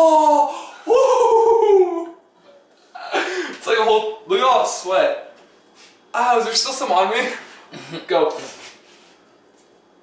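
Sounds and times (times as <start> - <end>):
boy's drawn-out cry of pain: 0.0 - 2.1.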